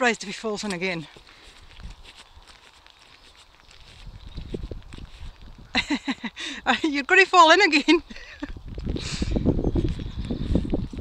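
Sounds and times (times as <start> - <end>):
handling rustling ticks: 0.0 - 6.1
wind rumble on microphone: 1.6 - 2.6, 3.7 - 6.8, 7.7 - 11.0.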